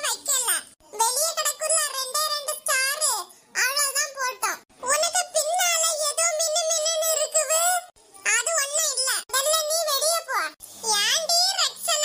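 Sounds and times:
high-pitched cartoon voice talking: 0.0s - 12.0s.

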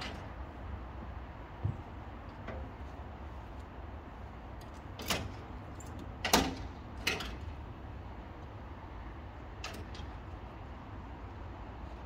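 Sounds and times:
clunks on steel deck: 6.2s - 7.4s.

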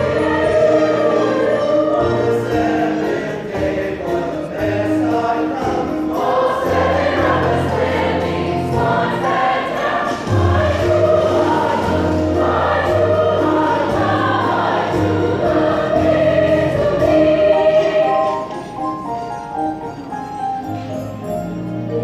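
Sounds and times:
chorus singing: 0.0s - 18.8s.

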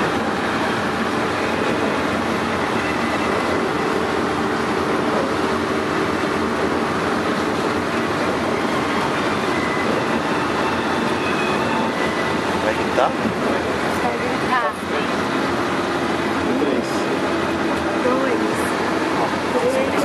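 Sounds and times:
van engine and road noise: 0.0s - 20.0s.

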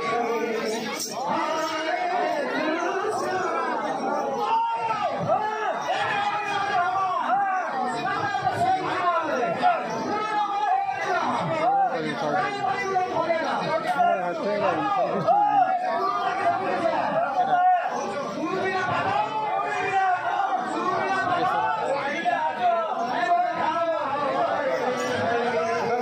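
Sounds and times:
men chattering: 0.0s - 26.0s.

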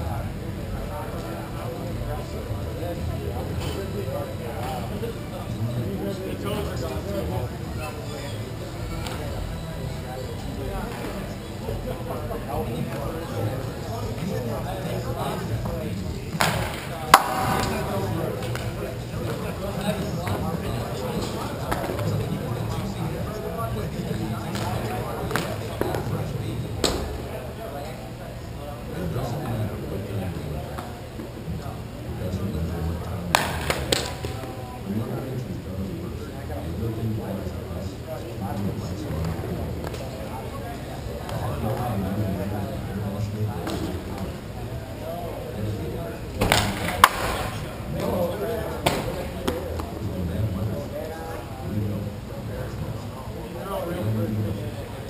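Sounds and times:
murmur of distant voices: 0.0s - 55.0s.

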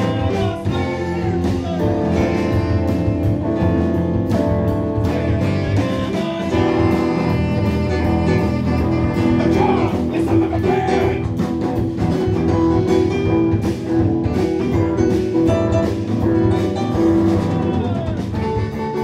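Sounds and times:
drum kit: 0.0s - 19.0s
electric bass: 0.0s - 19.0s
electric guitar: 0.0s - 19.0s
keyboards: 0.0s - 19.0s.

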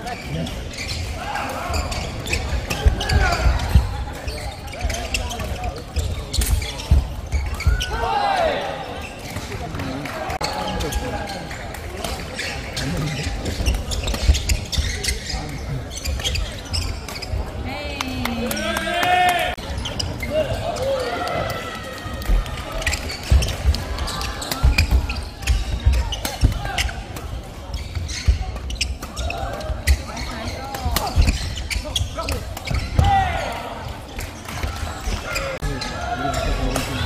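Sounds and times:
shoes squeaking: 0.0s - 37.0s.

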